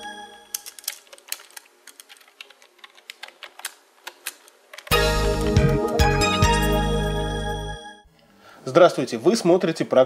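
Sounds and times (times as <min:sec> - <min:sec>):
loud music: 0:04.9 - 0:07.9.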